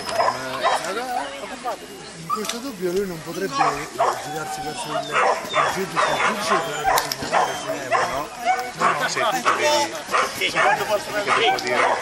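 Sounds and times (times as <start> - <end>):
dog barking: 0.1 - 1.2, 3.5 - 12.0.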